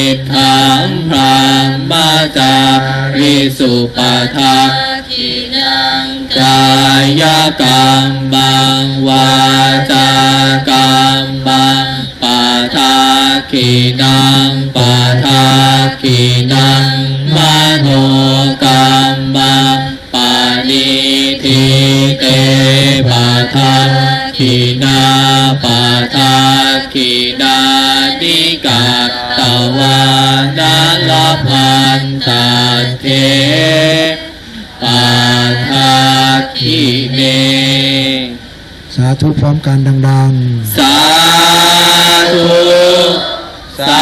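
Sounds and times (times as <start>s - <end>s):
group chanting in unison: 0.0s - 38.6s, 40.4s - 44.0s.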